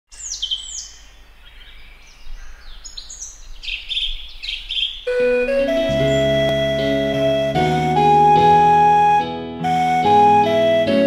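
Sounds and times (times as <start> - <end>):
birds singing and chirping: 0.1 - 8.2
instrumental music sustained notes: 5.1 - 11.0.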